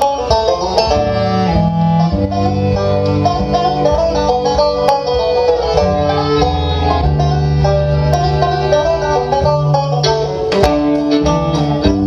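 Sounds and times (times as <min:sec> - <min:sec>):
banjo picking: 0:00.0 - 0:12.0
cello: 0:00.0 - 0:12.0
fiddle: 0:00.0 - 0:12.0
guitar: 0:00.0 - 0:12.0
low bowed notes: 0:00.0 - 0:12.0.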